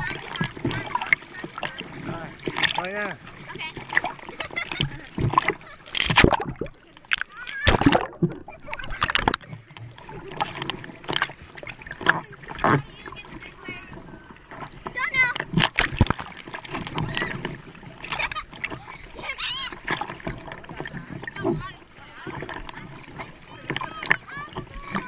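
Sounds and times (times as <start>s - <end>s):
water splashing against bodyboard: 0.0s - 25.0s
child calling out: 19.2s - 19.8s.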